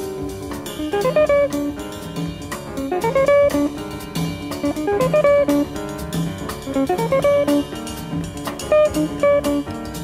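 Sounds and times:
drum kit cymbals: 0:00.0 - 0:10.0.

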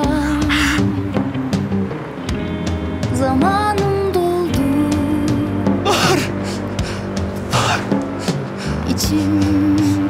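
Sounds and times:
background music: 0:00.0 - 0:10.0
man sobbing: 0:05.8 - 0:09.6.

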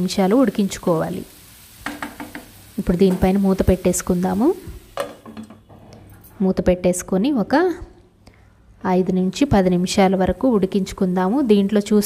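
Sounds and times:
mushrooms sizzling in a pan: 0:00.0 - 0:05.4, 0:09.4 - 0:12.0
spatula stirring and knocking pan: 0:01.8 - 0:03.3.

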